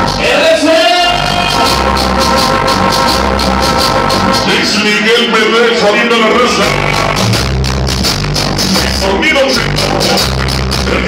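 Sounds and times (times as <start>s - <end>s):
cumbia dance music: 0.0s - 11.0s
high percussion beat: 0.0s - 11.0s
pulsing bass line: 0.0s - 11.0s.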